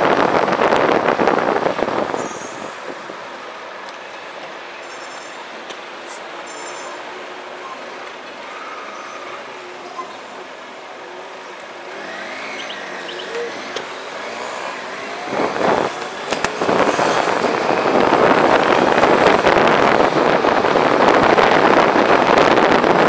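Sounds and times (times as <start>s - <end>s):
wind rushing on microphone: 0.0s - 3.7s, 11.7s - 23.0s
motorcycle engine running: 11.8s - 21.9s.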